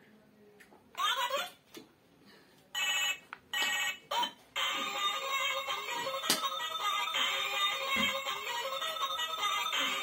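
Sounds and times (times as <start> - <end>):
toy telephone electronic ringing: 2.8 - 10.0.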